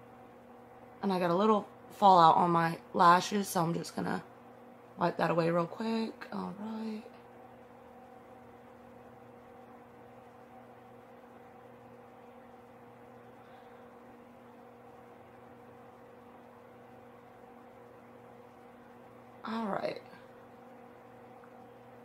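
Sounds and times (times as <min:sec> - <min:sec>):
faint electrical hum: 0:00.0 - 0:22.0.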